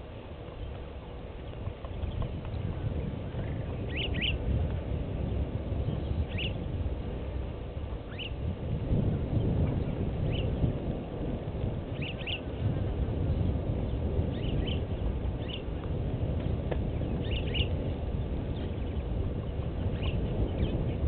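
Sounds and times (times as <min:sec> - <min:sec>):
low outdoor rumble: 0:00.0 - 0:21.0
bird chirping: 0:03.4 - 0:04.4, 0:05.3 - 0:06.7, 0:08.1 - 0:08.4, 0:11.9 - 0:12.5, 0:13.9 - 0:15.7, 0:17.0 - 0:17.8, 0:18.5 - 0:21.0.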